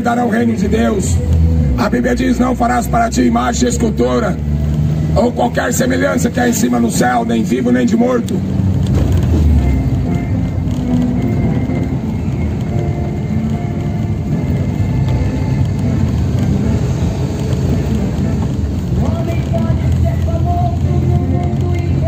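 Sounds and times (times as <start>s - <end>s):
faint music: 0.0s - 8.5s, 9.1s - 22.0s
car engine and road rumble: 0.0s - 22.0s.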